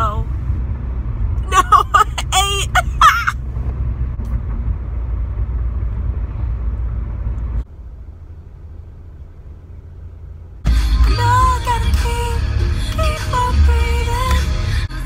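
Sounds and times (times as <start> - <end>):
cabin hum: 0.0 - 15.0
car road and engine rumble: 0.0 - 15.0
person laughing: 1.4 - 3.4
loud music: 10.7 - 15.0.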